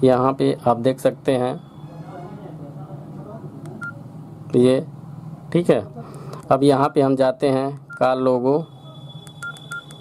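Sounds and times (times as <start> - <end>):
short high key beep: 8.6 - 10.0.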